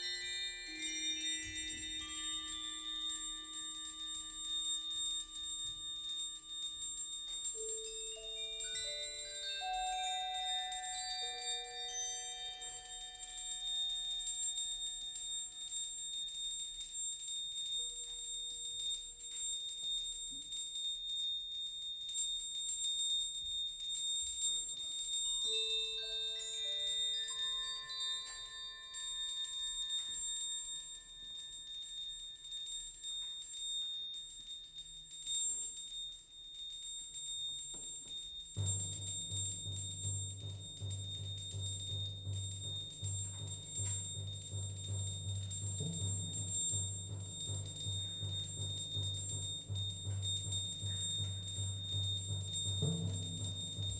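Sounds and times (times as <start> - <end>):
bell-like metal percussion notes: 0.0 - 53.9
steady high ringing tone: 0.0 - 53.9.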